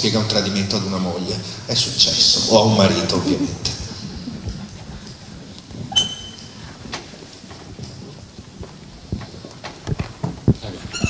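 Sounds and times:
short ringing clink: 6.0s - 6.6s
microphone handling knocks: 8.6s - 11.0s.

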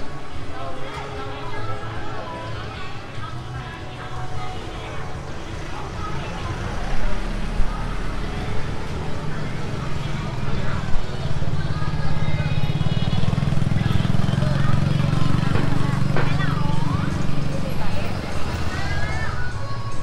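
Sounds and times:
motorbikes: 0.0s - 20.0s
voices of passers-by: 0.0s - 20.0s
delivery truck engine running: 0.2s - 20.0s.

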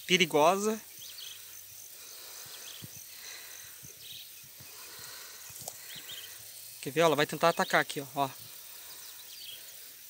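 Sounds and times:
high-pitched insect chirping: 0.0s - 10.0s.

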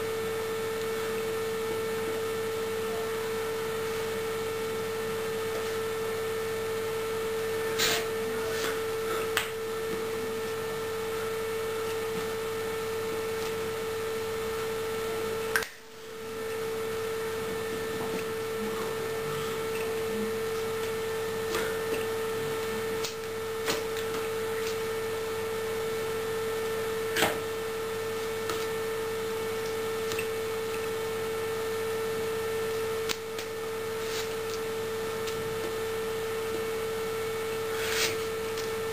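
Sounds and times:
steady electrical tone: 0.0s - 38.9s.

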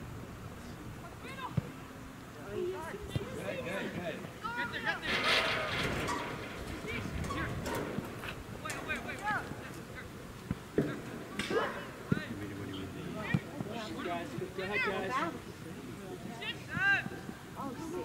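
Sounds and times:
players and spectators shouting: 10.8s - 15.3s.

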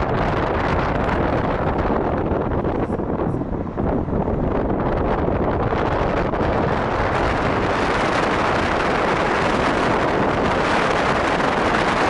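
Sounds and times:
road and engine noise: 0.0s - 12.0s
wind buffeting microphone: 0.0s - 12.0s.

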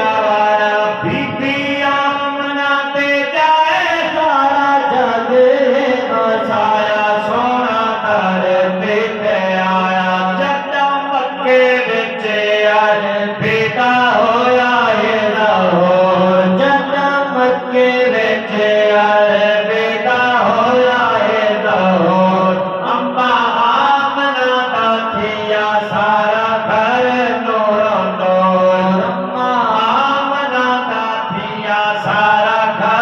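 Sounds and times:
men chanting devotional melody: 0.0s - 33.0s.

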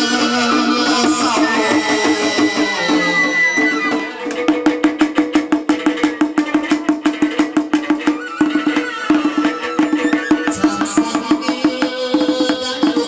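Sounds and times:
plucked-string melody: 3.7s - 8.6s.

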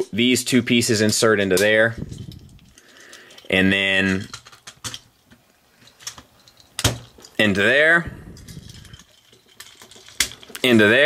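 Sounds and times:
plastic parts clicking: 1.6s - 7.4s, 8.4s - 10.8s.

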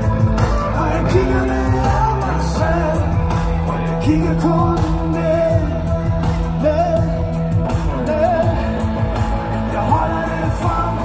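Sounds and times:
man singing into a microphone: 0.0s - 11.0s
steady bass line: 0.0s - 11.0s.

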